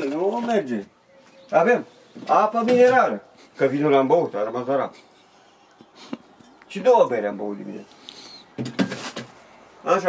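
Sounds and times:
objects clattering on refrigerator shelves: 8.6s - 9.4s.

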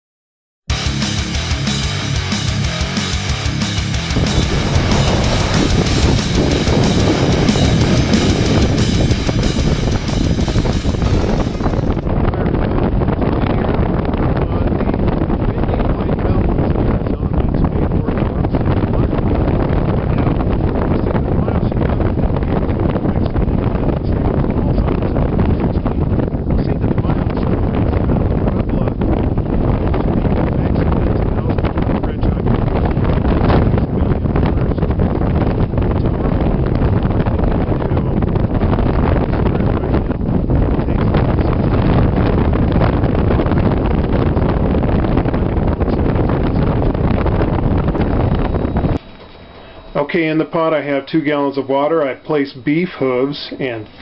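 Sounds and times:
wind buffeting microphone: 3.3s - 51.9s
man talking: 14.4s - 19.4s, 20.2s - 26.0s, 26.6s - 27.6s, 28.5s - 29.0s, 30.6s - 32.5s, 33.6s - 35.0s, 49.9s - 54.0s.

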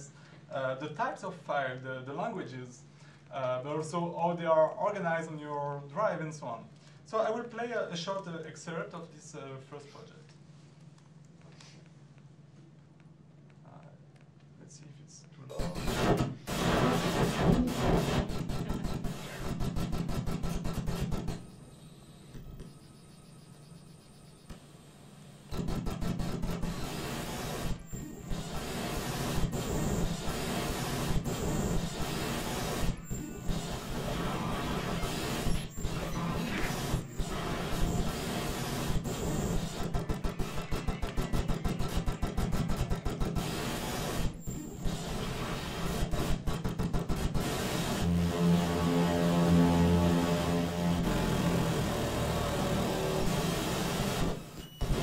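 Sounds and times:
glitchy noise with rapid clicks: 15.5s - 21.6s, 25.5s - 55.0s
low buzz: 21.2s - 41.1s, 47.7s - 55.0s.

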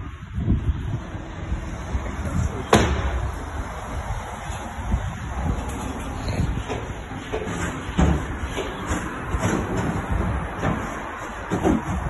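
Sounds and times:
wheelie bin rolling over tarmac: 3.3s - 12.0s.

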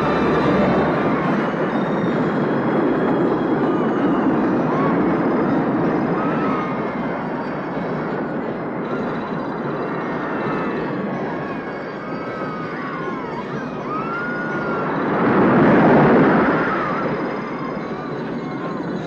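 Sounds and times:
riders screaming: 0.0s - 19.0s
roller coaster rattling on track: 0.0s - 19.0s.

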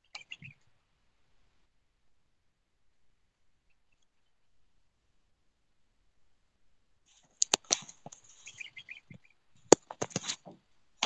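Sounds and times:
sharp clicks and knocks: 7.4s - 8.2s.

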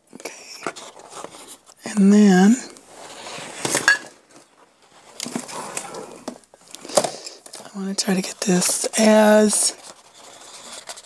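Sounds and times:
paper rustling: 2.9s - 11.0s.

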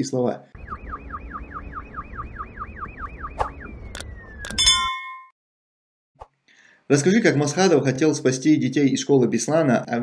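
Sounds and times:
falling electronic alarm tone: 0.6s - 4.9s
bell-like chime: 4.5s - 5.3s.

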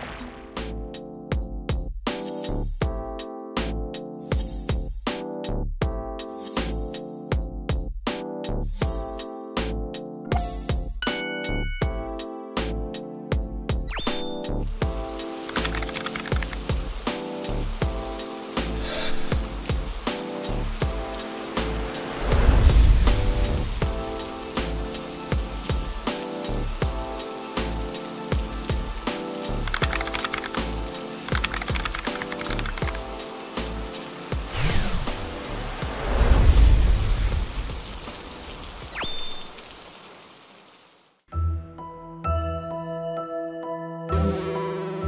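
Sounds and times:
background music of sustained chords: 14.4s - 36.8s
rain pattering on water: 14.8s - 41.2s.

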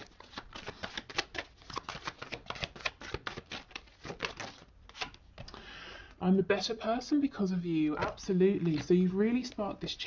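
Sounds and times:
cards being shuffled: 0.0s - 5.5s, 8.0s - 9.8s.

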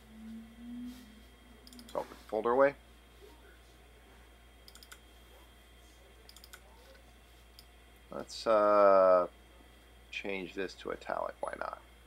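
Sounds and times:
faint computer clicks: 1.6s - 2.0s, 4.6s - 5.0s, 6.3s - 6.6s.

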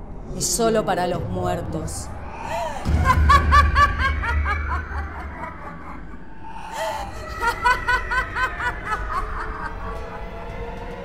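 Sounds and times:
person laughing loudly: 2.5s - 10.4s.

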